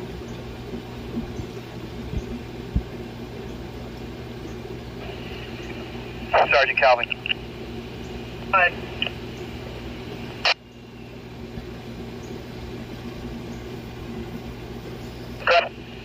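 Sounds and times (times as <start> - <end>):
steady hiss and low hum: 0.0 - 16.0
radio static burst: 5.0 - 10.6, 15.3 - 16.0
clipped radio voice: 6.2 - 7.4, 8.4 - 9.2, 15.4 - 15.8.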